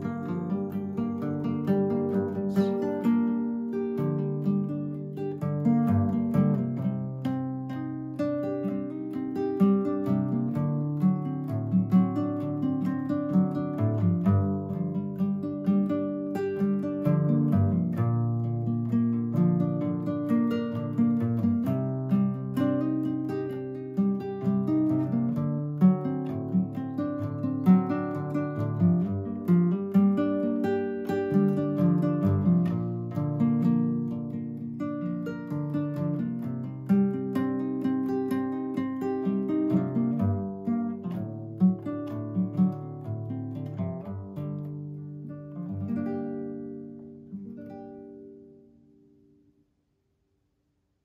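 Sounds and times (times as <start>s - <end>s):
fingerpicked classical guitar: 0.0s - 49.6s.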